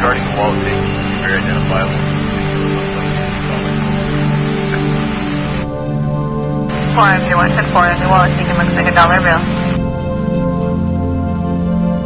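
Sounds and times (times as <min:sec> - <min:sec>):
background music of held notes: 0:00.0 - 0:12.0
person talking like police radio: 0:06.8 - 0:09.7.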